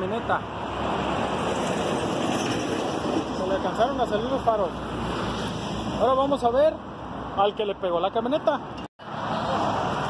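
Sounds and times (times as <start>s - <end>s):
road traffic rushing: 0.0s - 10.0s.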